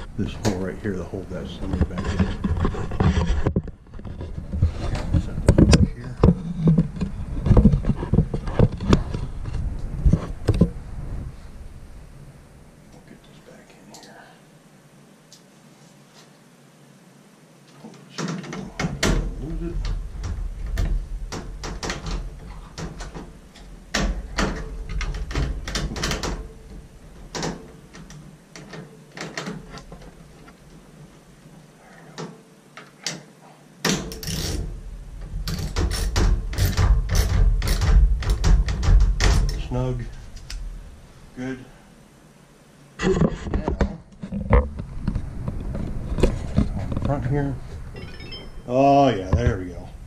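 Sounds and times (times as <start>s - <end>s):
bumping and rubbing from handling: 0.0s - 11.4s, 18.1s - 33.3s.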